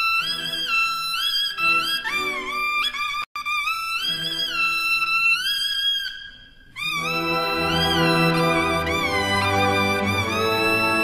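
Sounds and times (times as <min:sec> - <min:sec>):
orchestra bowed strings: 0:06.9 - 0:11.0
double-reed horn melody: 0:07.0 - 0:11.0.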